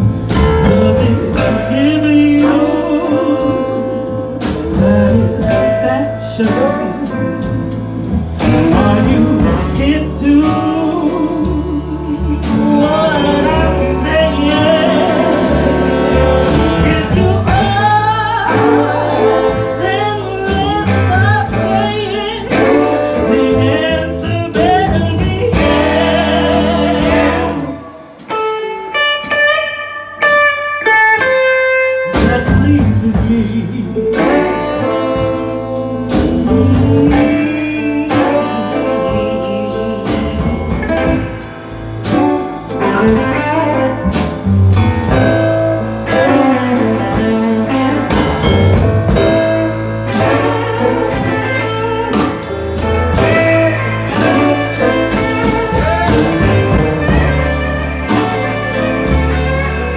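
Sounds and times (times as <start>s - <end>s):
swing-blues band playing: 0.0s - 59.9s
woman singing: 0.3s - 7.7s, 8.4s - 27.8s, 32.1s - 41.2s, 53.1s - 57.4s.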